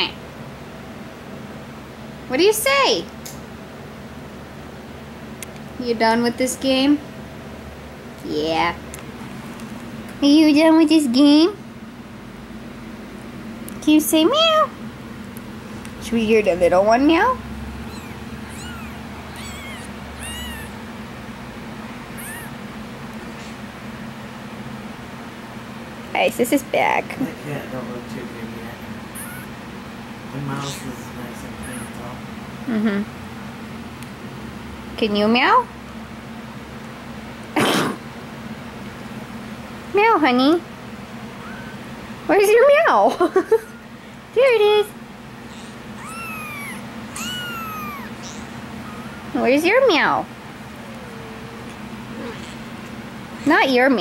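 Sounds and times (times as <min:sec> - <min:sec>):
kitten mewing: 0:17.8 - 0:20.8, 0:22.1 - 0:22.6, 0:29.1 - 0:29.6, 0:41.3 - 0:41.9, 0:45.5 - 0:49.4, 0:50.6 - 0:53.6.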